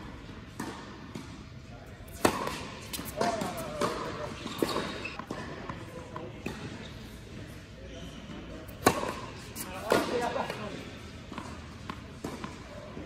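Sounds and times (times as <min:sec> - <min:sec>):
tennis balls struck by rackets: 0:00.0 - 0:06.8, 0:08.7 - 0:10.6, 0:11.2 - 0:13.0
tennis balls bouncing on hard court: 0:00.0 - 0:06.9, 0:08.3 - 0:13.0.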